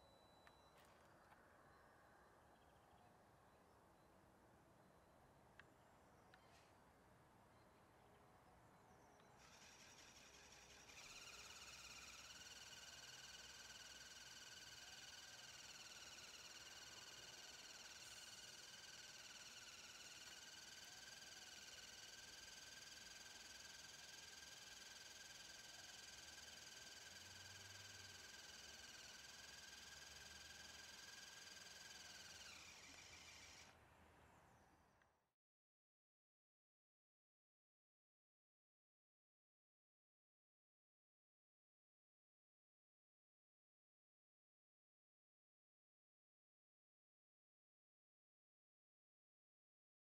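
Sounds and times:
small electric motor whine: 0.0 - 1.6, 8.9 - 33.8.

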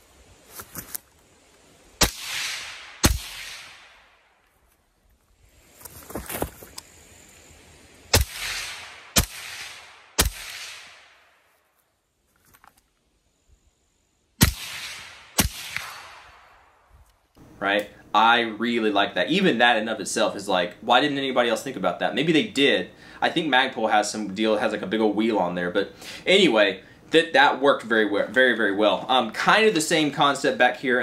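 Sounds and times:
suppressed gunshots with echo: 2.0 - 4.3, 8.1 - 11.4, 14.4 - 16.9.

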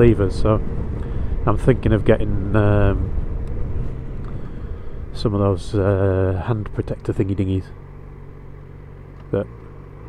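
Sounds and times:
motorcycle engine droning: 0.0 - 10.0
road and wind noise: 0.0 - 10.0.

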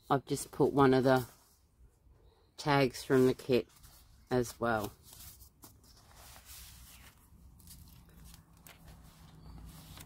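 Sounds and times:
paper pages rustling: 3.1 - 10.0
page turning: 3.6 - 10.0.

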